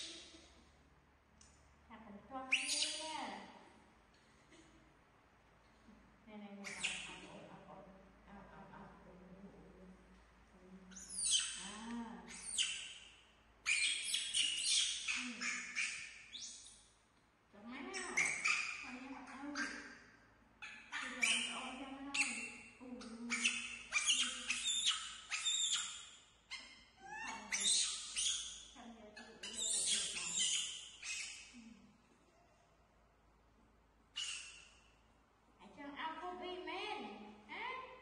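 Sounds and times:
baby monkeys squealing: 0:02.5 - 0:03.0, 0:06.6 - 0:07.1, 0:10.9 - 0:11.7, 0:12.3 - 0:13.0, 0:13.7 - 0:16.8, 0:17.9 - 0:20.0, 0:20.6 - 0:28.6, 0:29.2 - 0:31.6, 0:34.2 - 0:34.8
young macaque screeching: 0:02.5 - 0:03.0, 0:06.6 - 0:07.1, 0:10.9 - 0:11.7, 0:12.3 - 0:13.0, 0:13.7 - 0:16.8, 0:17.9 - 0:20.0, 0:20.6 - 0:28.6, 0:29.2 - 0:31.6, 0:34.2 - 0:34.8.

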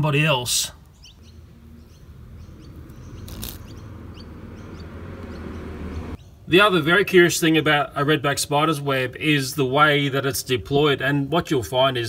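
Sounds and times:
birds chirping faintly: 0:00.0 - 0:12.0
beetle wings buzzing: 0:01.2 - 0:06.0.

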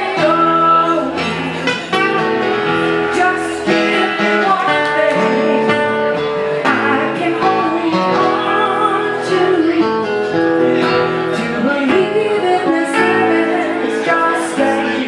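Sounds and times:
acoustic guitar: 0:00.0 - 0:15.0.

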